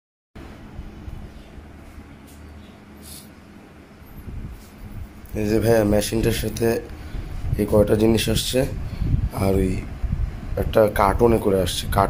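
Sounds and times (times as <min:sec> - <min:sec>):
faint hum: 0:00.4 - 0:12.0
low steady rumble: 0:00.4 - 0:12.0.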